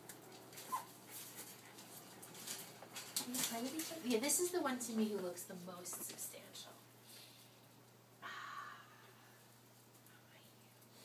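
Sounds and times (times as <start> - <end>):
faint scratchy noise: 0.0 - 11.0.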